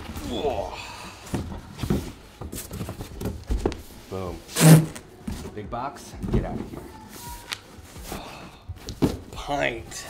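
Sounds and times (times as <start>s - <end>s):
cardboard boxes scraping and knocking: 1.3s - 6.8s.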